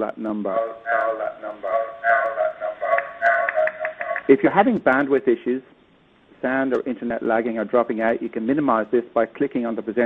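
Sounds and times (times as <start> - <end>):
garbled robotic voice: 0.0 - 4.6.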